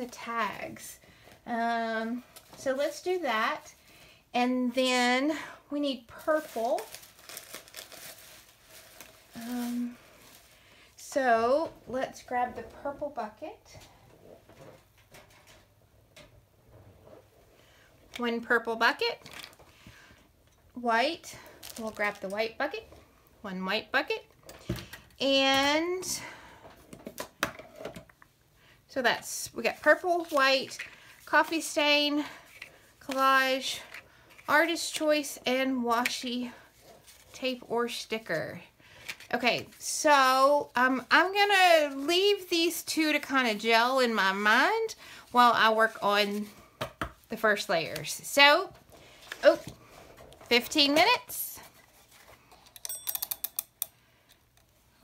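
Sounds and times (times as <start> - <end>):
kitchen timer ratcheting clicks: 52.8 - 54.0.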